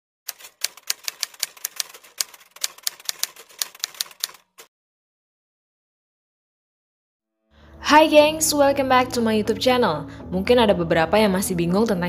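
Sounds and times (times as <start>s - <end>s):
typewriter keys clacking: 0.3s - 4.7s.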